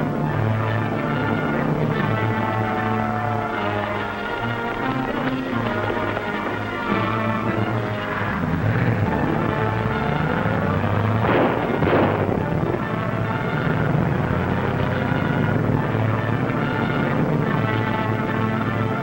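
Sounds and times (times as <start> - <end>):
dramatic orchestral music: 0.0 - 19.0.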